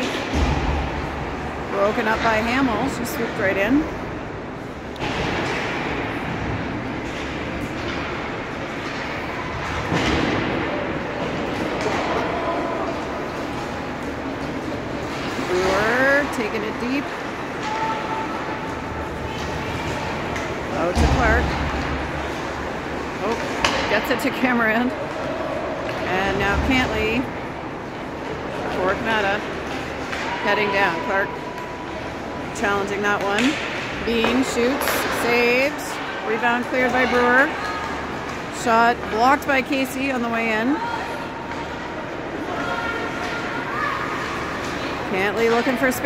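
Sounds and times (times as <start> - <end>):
steady hall hum: 0.0 - 46.0
spectators talking and calling out: 8.0 - 46.0.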